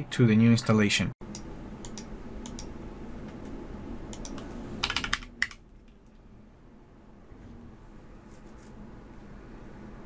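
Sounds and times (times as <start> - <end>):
keyboard keystrokes: 4.1 - 6.0.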